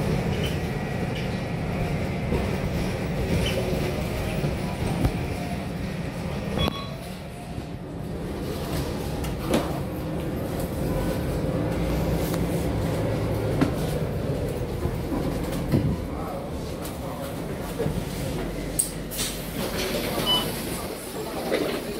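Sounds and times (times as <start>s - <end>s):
bus engine and road rumble: 0.0s - 21.9s.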